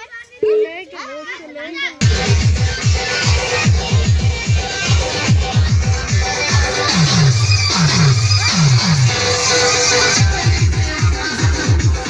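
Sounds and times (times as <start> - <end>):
girls talking and calling out: 0.0 - 7.4
dance music: 2.0 - 12.0.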